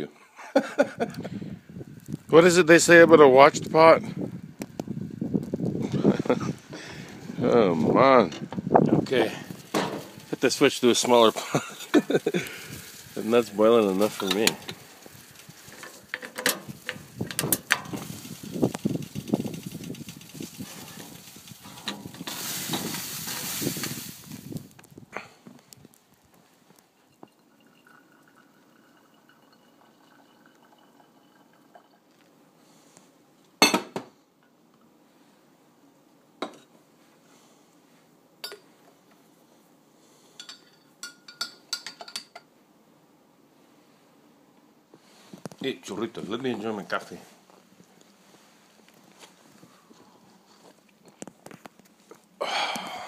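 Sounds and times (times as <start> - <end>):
steady hiss: 4.7 - 29.0, 36.8 - 53.0
metal kettle clattering on grill: 9.5 - 24.0.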